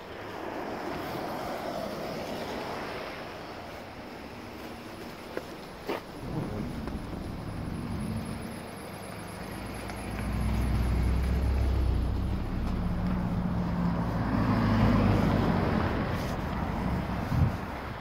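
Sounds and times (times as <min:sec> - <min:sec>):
vehicle engine running: 0:05.6 - 0:18.0.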